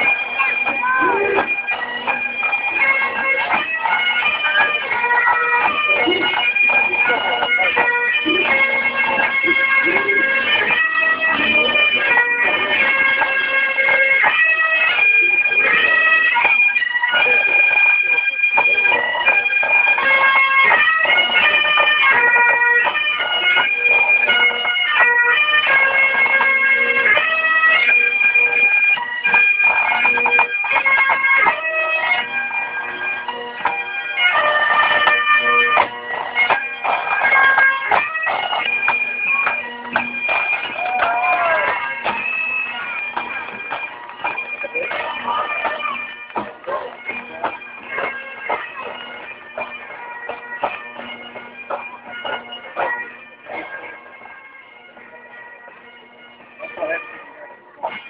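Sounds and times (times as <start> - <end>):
bagpipes playing over drone: 0.0 - 58.0.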